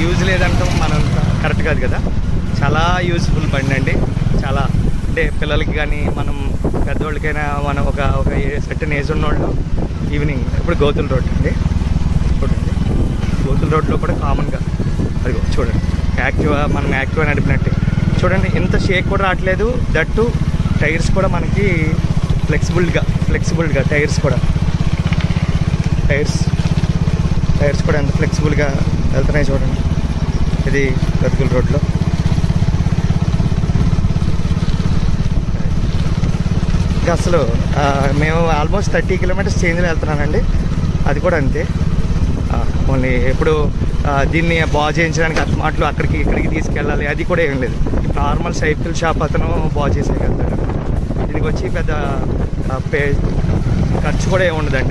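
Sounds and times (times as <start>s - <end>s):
people talking: 0.0s - 11.6s, 12.3s - 24.4s, 26.0s - 26.5s, 27.6s - 29.8s, 30.6s - 31.9s, 37.0s - 41.7s, 42.5s - 50.5s, 51.2s - 53.3s, 53.9s - 54.9s
wind and road noise: 0.0s - 54.9s.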